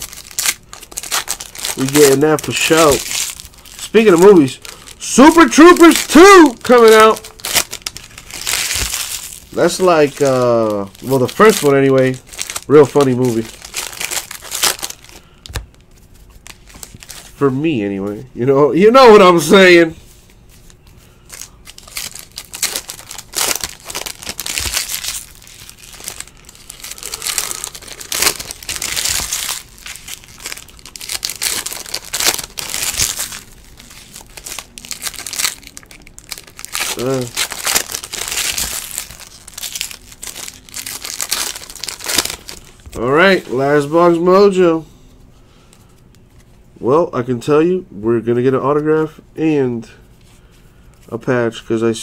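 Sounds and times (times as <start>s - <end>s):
foil wrappers tearing and crinkling: 0.0s - 17.4s, 21.3s - 43.8s.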